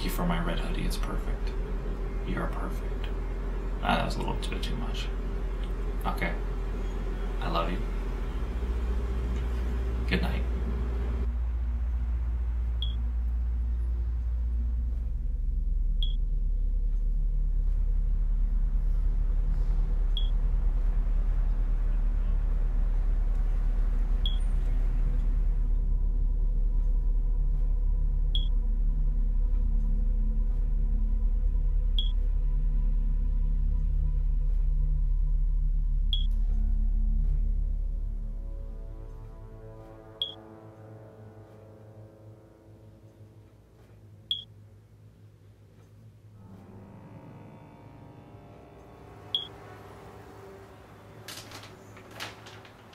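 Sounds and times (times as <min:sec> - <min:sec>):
steady low hum: 0:00.0 - 0:52.9
high electronic beep: 0:12.8 - 0:13.0, 0:20.2 - 0:20.4, 0:24.2 - 0:24.4, 0:49.3 - 0:49.5
high-pitched electronic beep: 0:49.3 - 0:49.5.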